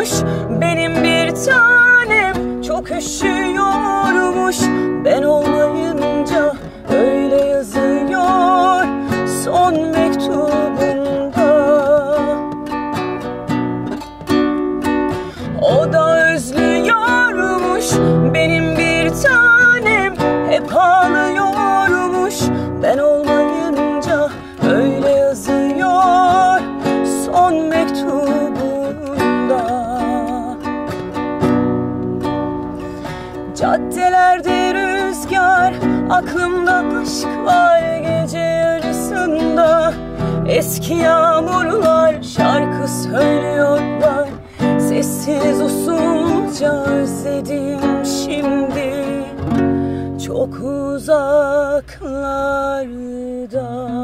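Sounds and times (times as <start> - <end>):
woman singing with vibrato: 0.0 - 13.5, 14.6 - 31.9, 32.9 - 54.0
classical guitar strummed: 0.0 - 54.0.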